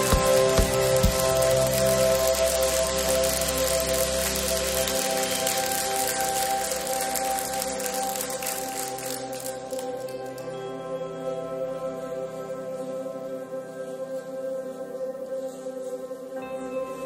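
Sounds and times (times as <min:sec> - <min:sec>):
congregation applauding: 0:00.0 - 0:10.4
soft ambient music: 0:00.0 - 0:17.0.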